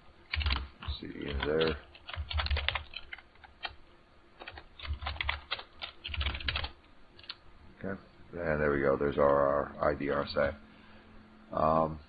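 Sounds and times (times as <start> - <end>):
typing on computer keyboard: 0.3 - 3.8, 4.4 - 7.4.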